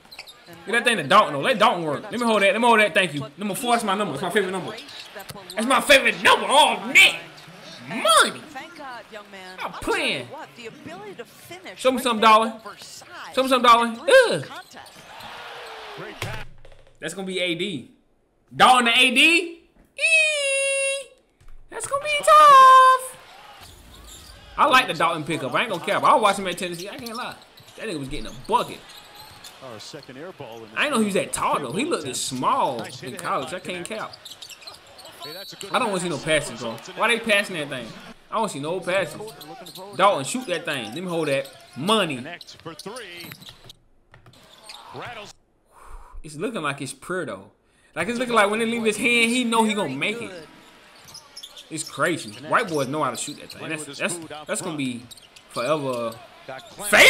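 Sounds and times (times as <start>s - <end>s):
arena crowd noise: 0.0s - 16.5s, 21.7s - 43.6s, 44.4s - 45.4s, 48.0s - 57.0s
man talking: 0.6s - 4.9s, 5.6s - 8.6s, 9.6s - 10.4s, 11.8s - 12.6s, 13.4s - 14.5s, 18.5s - 21.0s, 24.6s - 28.8s, 29.6s - 34.2s, 35.1s - 43.4s, 46.2s - 50.5s, 51.7s - 57.0s
basketball bouncing on hardwood: 42.5s - 44.5s.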